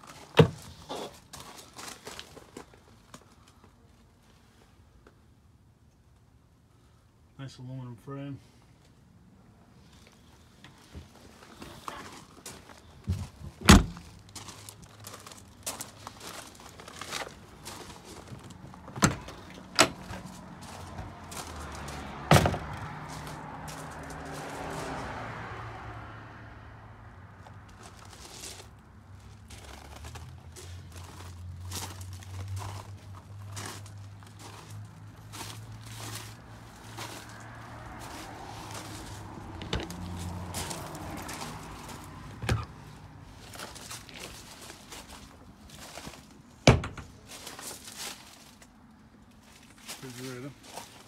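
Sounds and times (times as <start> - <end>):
handling noises: 9.9 - 24.5, 27.7 - 48.7
doors and latches thunking: 13.2 - 14.0, 18.9 - 20.1, 22.3 - 22.7, 42.4 - 42.7, 46.6 - 47.2.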